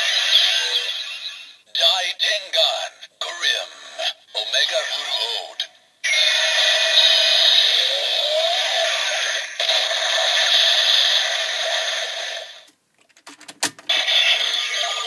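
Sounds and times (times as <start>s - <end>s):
electronic toy sound effects: 0.0s - 2.0s, 4.5s - 12.7s, 13.9s - 15.0s.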